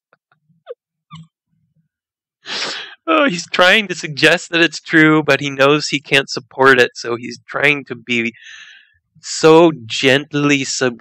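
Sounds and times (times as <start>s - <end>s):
sharp breathy inhale: 2.5s - 3.0s, 8.4s - 9.0s
man laughing: 2.5s - 3.5s.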